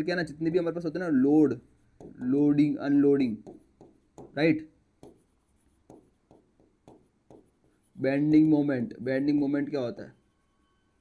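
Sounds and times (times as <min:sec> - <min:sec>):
pen scratching on display: 0:01.3 - 0:08.7.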